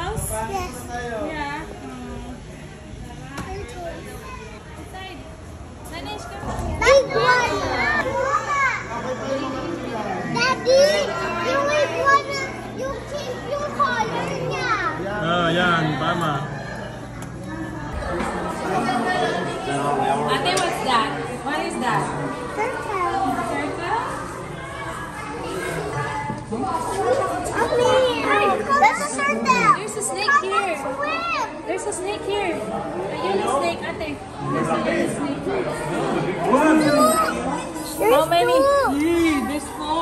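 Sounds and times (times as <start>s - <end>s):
children chattering: 0.0s - 40.0s.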